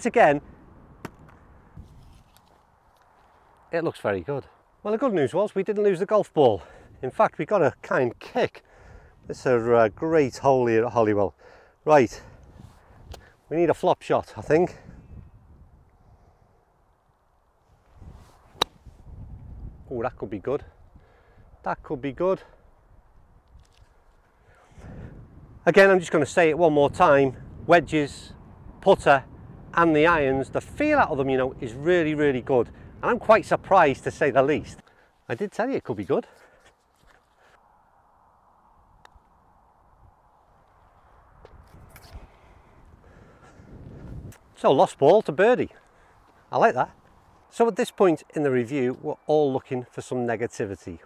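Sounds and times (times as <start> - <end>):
golf club swish: 18.0 - 19.0
club striking golf ball click: 18.6 - 18.8.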